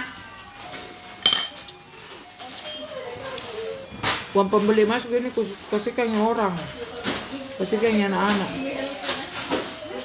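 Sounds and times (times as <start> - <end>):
cutlery clinking on plate: 1.2 - 1.7.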